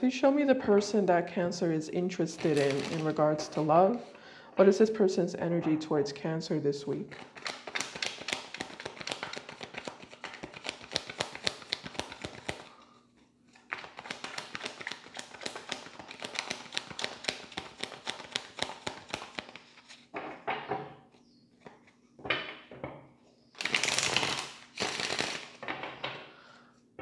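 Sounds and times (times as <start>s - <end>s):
cards being shuffled: 2.4s - 3.2s, 7.1s - 12.7s, 13.5s - 20.1s, 23.6s - 25.6s.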